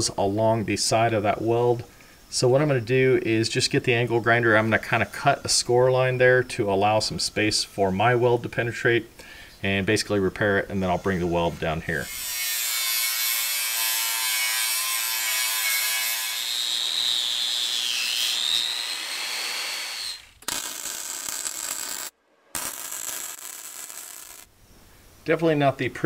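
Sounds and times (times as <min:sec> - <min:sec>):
angle grinder whining on steel: 0:11.1 - 0:24.5
wire-feed welder crackling: 0:12.0 - 0:24.5.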